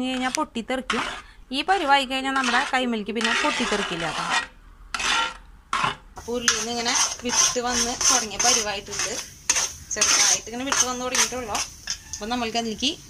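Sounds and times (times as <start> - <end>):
spatula scraping a metal pan: 0.0 - 13.0.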